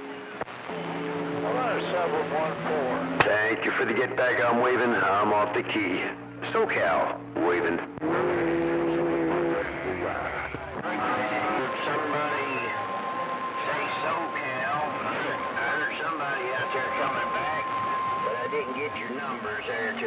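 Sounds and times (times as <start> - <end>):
radio static hiss: 0.0 - 20.0
steady low tone: 0.0 - 20.0
faint garbled radio voices: 1.4 - 20.0
steady whistle: 10.8 - 20.0.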